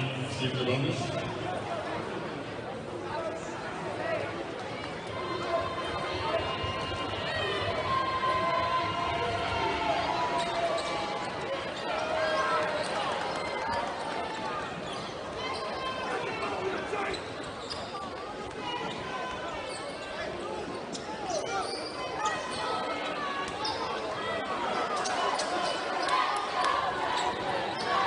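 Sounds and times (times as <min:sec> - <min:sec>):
spectators chattering: 0:00.0 - 0:28.0.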